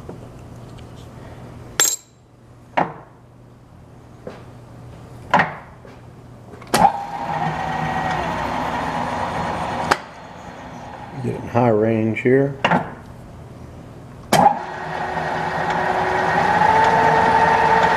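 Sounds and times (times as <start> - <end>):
drill press whining: 6.8 - 11.3, 14.3 - 17.9
drill press humming: 6.8 - 11.5, 14.3 - 17.9.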